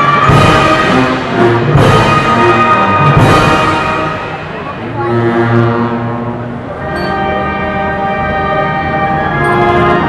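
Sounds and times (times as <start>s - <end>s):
brass band playing a funeral march: 0.0s - 10.0s.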